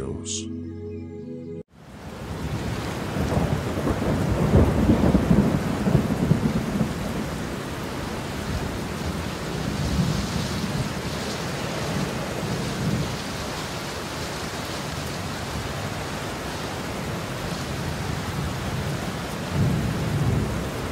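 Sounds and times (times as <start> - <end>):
heavy rain: 1.8 - 20.9
rolling thunder: 2.1 - 13.5, 15.3 - 20.9.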